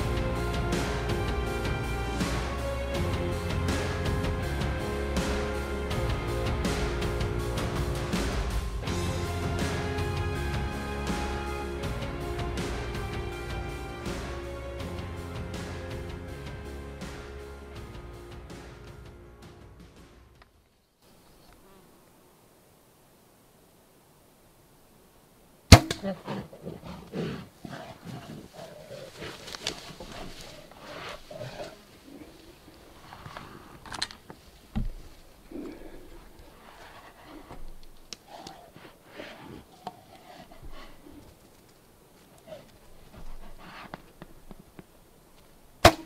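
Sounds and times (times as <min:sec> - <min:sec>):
rustling and knocking: 0:28.0 - 0:31.9, 0:32.6 - 0:38.4.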